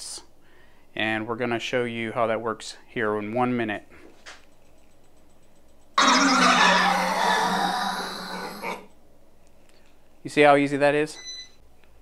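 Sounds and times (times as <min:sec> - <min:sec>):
harsh scare sound effect: 0:06.0 - 0:08.9.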